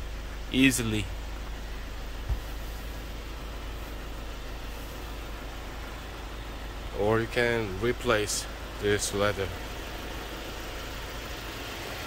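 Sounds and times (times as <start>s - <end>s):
low rumble and hiss: 0.0s - 12.0s
low thump: 2.2s - 2.6s.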